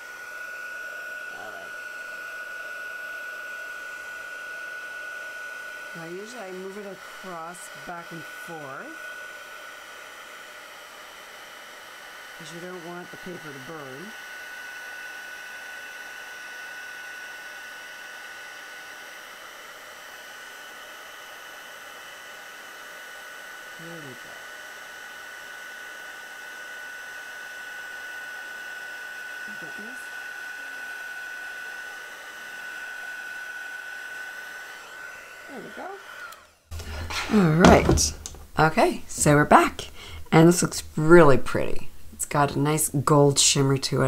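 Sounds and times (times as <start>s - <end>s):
heat tool blowing air: 0.0s - 42.6s.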